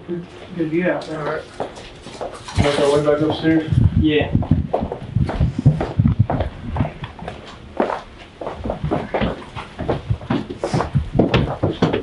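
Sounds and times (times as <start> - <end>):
man speaking indistinctly: 2.5 - 5.7
quick thumps and knocks: 8.7 - 12.0.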